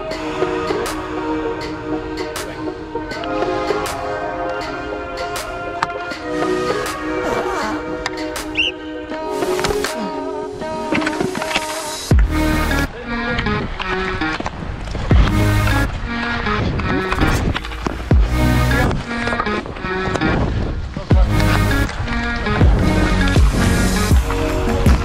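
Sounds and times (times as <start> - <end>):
melodic music with sustained notes: 0.0 - 25.0
heavy bass beat: 12.1 - 12.9, 15.1 - 15.9, 18.0 - 18.9, 21.1 - 21.9, 22.6 - 25.0.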